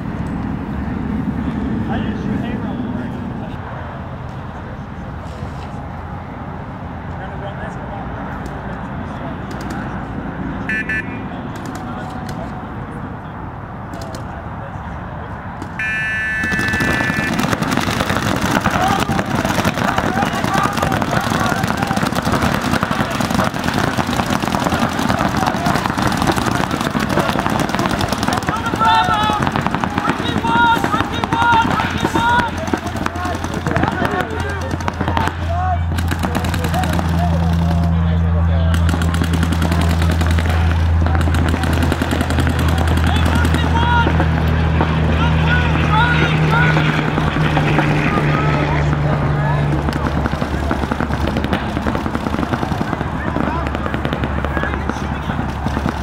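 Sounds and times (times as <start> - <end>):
players shouting: 10.6 - 13.0, 15.8 - 56.0
paintball markers firing: 10.7 - 12.5, 15.6 - 38.0, 38.7 - 44.9, 49.7 - 56.0.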